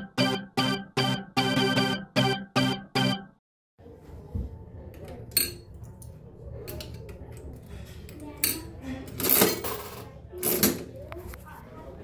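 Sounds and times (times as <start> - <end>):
slot machine reels clattering: 0.0 - 3.3.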